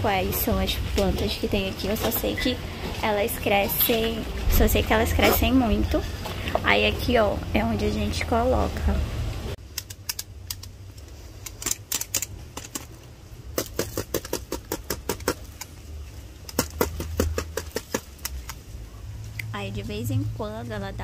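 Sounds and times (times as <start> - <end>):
low steady rumble: 0.0 - 11.6, 15.4 - 21.0
scraps clicking and crackling: 9.6 - 18.7.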